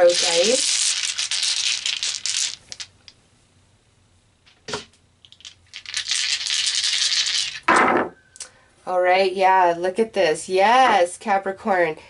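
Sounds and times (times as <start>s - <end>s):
dice rattling in cloth pouch: 0.0s - 2.9s, 5.2s - 7.7s
dice clicks: 0.1s - 2.9s, 5.2s - 7.7s.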